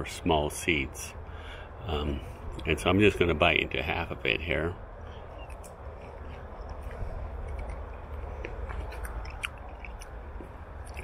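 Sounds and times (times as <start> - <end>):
low steady rumble: 0.0 - 11.0
man chewing fruit: 5.0 - 11.0
wet mouth clicks: 5.4 - 11.0.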